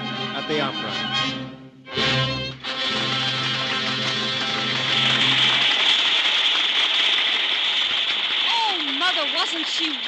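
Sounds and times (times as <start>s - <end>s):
loud applause: 2.5s - 10.0s.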